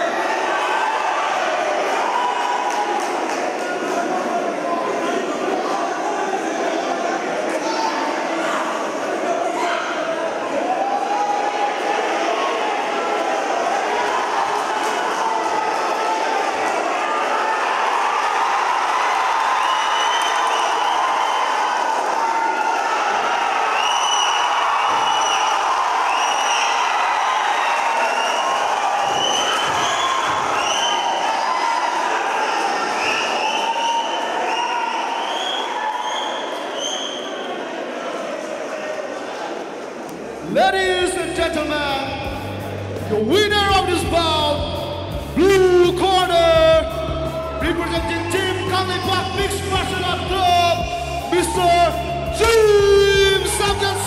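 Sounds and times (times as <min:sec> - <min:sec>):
crowd yelling and cheering: 0:00.0 - 0:54.0.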